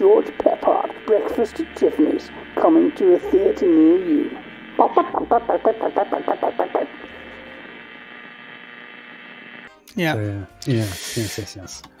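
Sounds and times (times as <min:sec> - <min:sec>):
faint steady tones: 0:00.0 - 0:09.7
hum and hiss: 0:00.0 - 0:09.8.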